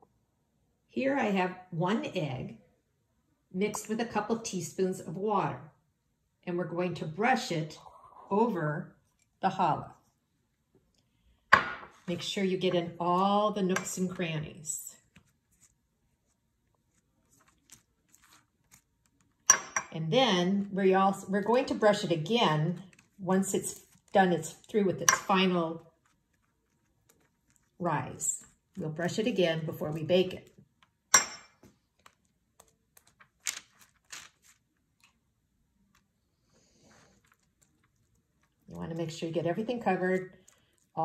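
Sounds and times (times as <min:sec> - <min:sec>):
soft brush strokes: 0:15.0 - 0:19.2.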